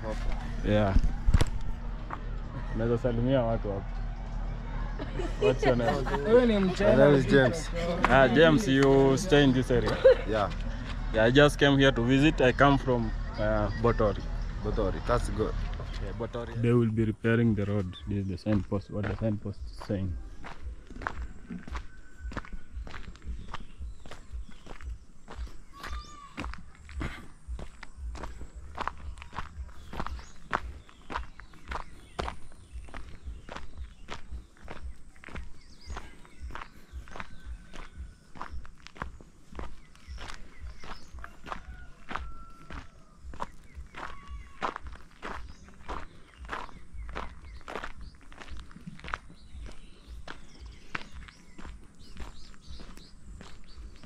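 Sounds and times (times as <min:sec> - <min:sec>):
footsteps on a dirt road: 0:00.0 - 0:54.0.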